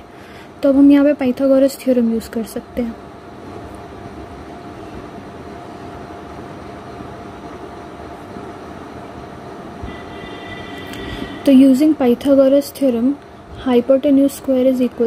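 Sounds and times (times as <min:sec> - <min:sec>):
background rumble and hiss: 0:00.0 - 0:15.0
faint constant hum: 0:00.0 - 0:15.0.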